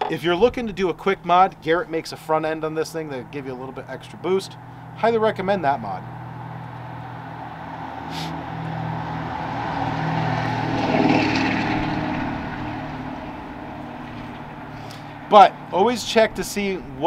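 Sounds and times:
distant engine drone passing: 0.0s - 17.0s.

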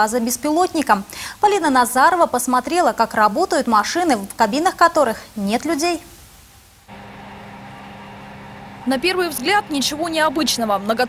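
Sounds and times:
heavy mining machinery humming: 6.9s - 11.0s.

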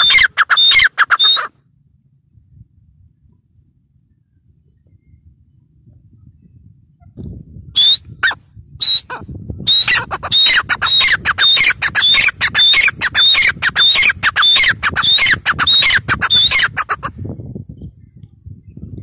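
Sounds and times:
francolin calling: 0.0s - 1.5s, 7.8s - 17.1s.

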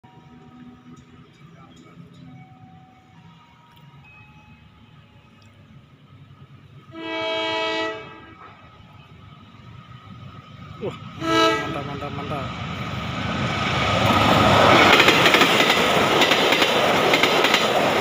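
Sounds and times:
locomotive horn blast: 6.9s - 8.6s, 11.2s - 12.3s.

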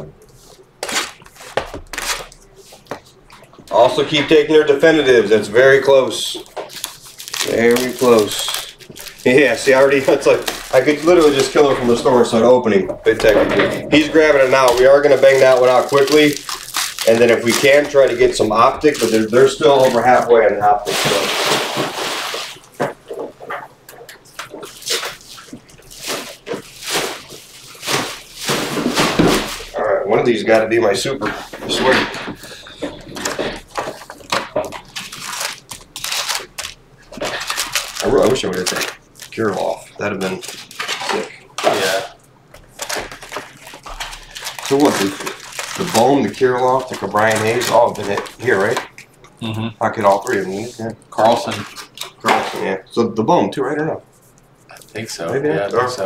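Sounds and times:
foil wrappers crinkling: 0.3s - 49.2s, 49.8s - 52.8s, 54.2s - 56.0s.

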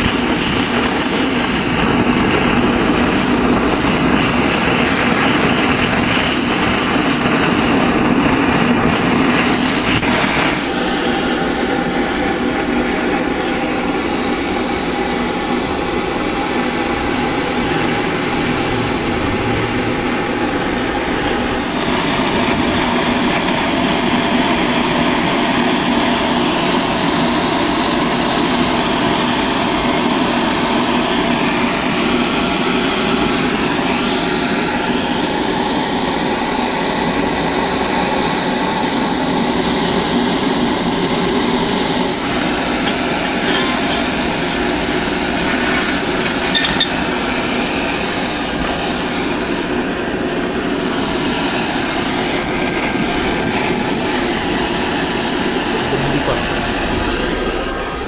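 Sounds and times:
gas torch flame hissing: 0.0s - 58.0s.

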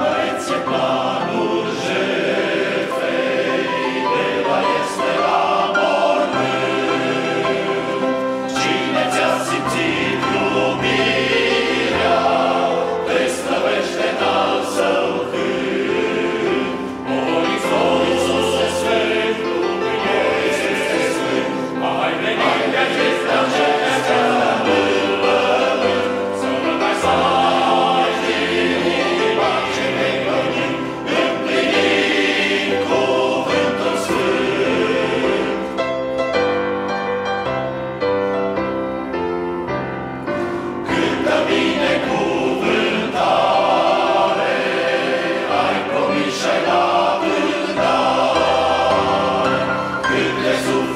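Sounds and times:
men's choir singing a hymn: 0.0s - 36.8s, 40.3s - 50.9s.

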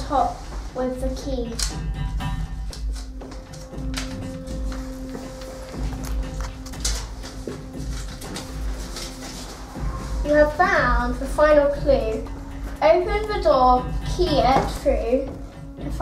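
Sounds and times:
paper card clicks and rustles: 1.5s - 1.8s, 2.7s - 9.7s.

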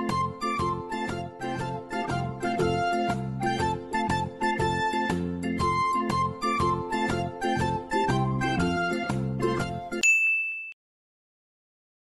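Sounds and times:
high bell-like ding: 10.0s - 10.8s.

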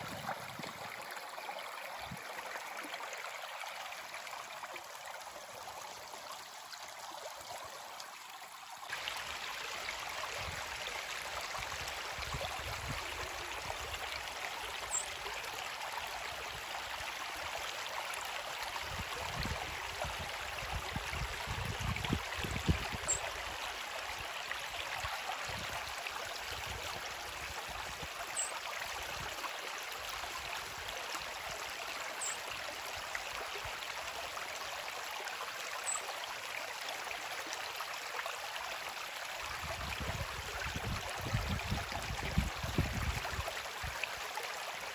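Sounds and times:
brook running water: 0.0s - 44.9s.

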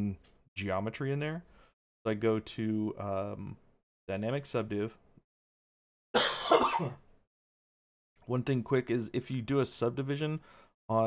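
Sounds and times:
man coughing: 6.2s - 7.0s.

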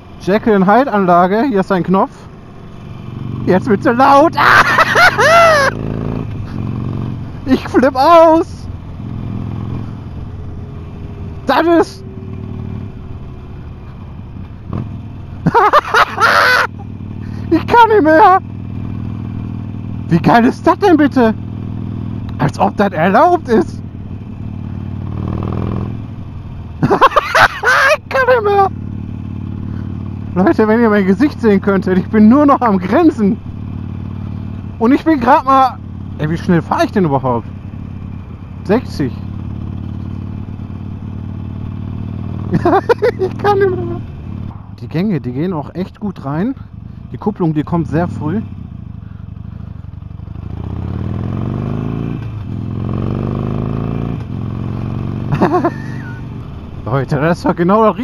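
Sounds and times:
motorcycle engine running loud: 0.0s - 58.0s
rider vocal exclamation: 3.4s - 8.7s, 11.3s - 12.3s, 15.4s - 18.5s, 27.2s - 28.8s, 42.5s - 44.1s.

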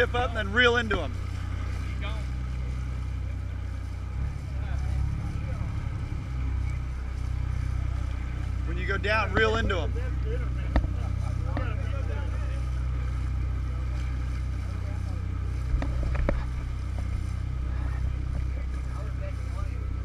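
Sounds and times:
boat engines droning: 0.0s - 20.0s.

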